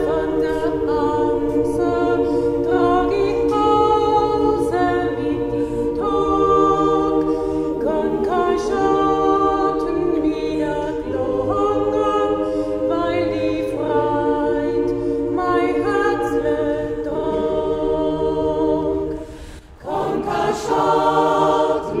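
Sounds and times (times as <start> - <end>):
mixed choir singing a cappella: 0.0 - 22.0.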